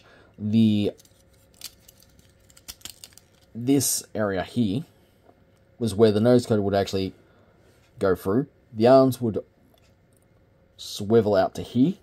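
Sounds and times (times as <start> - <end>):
plastic toy parts clicking: 1.0 - 3.5.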